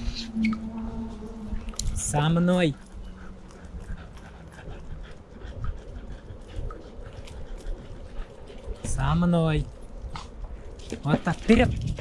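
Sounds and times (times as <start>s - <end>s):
longboard wheels rolling on asphalt: 0.0s - 12.0s
dog panting: 1.6s - 12.0s.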